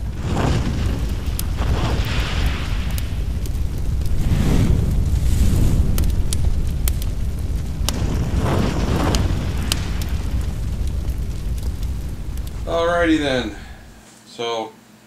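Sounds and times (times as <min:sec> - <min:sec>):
deep rumble of flames: 0:00.0 - 0:14.0
fire crackles: 0:00.0 - 0:14.1.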